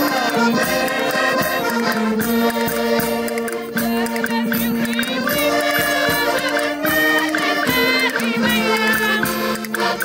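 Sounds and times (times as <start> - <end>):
button accordion chords: 0.0 - 10.0
people singing: 0.0 - 10.0
tambourine: 0.0 - 10.0.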